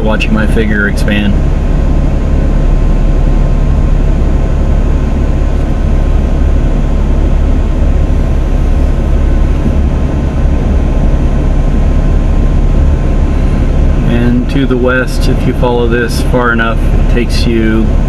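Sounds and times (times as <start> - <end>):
engine and road rumble: 0.0 - 18.0.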